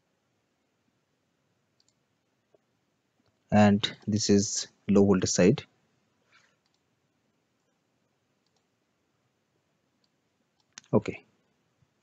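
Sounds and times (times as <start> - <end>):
faint computer mouse click: 1.8 - 2.0, 6.6 - 6.9, 8.4 - 8.7.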